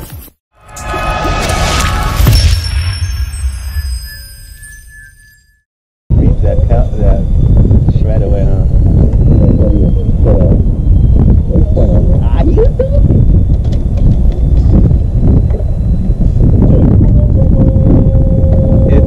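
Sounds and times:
steady tone: 0:00.6 - 0:19.0
wind buffeting microphone: 0:06.1 - 0:19.0
men's voices: 0:06.2 - 0:07.3, 0:07.9 - 0:10.7, 0:11.4 - 0:12.5.

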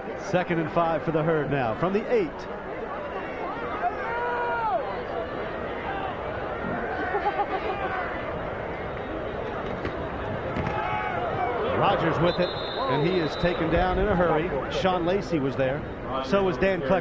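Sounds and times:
crowd shouting: 0:02.6 - 0:14.9.

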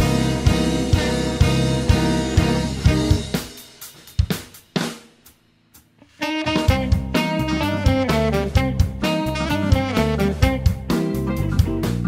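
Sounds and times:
live band instrumental groove: 0:00.0 - 0:12.0.

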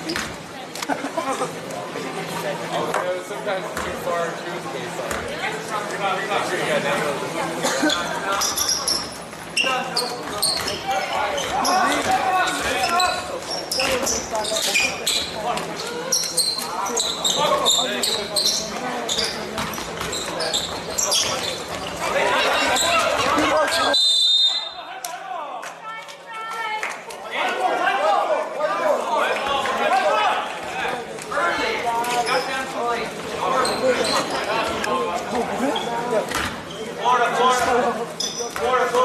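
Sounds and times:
voices of players and spectators: 0:00.0 - 0:39.0.

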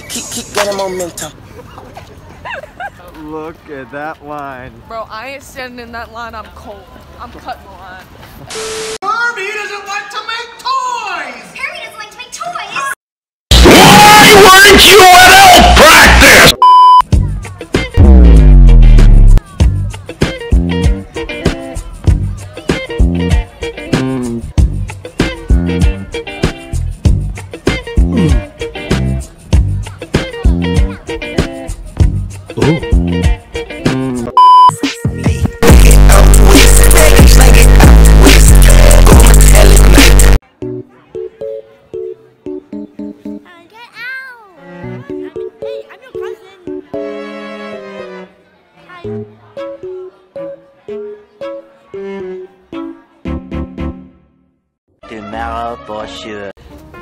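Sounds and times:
loud distorted meme audio: 0:13.5 - 0:16.6, 0:18.0 - 0:19.4, 0:35.6 - 0:40.4
high electronic beep: 0:16.4 - 0:17.1, 0:34.4 - 0:34.8.

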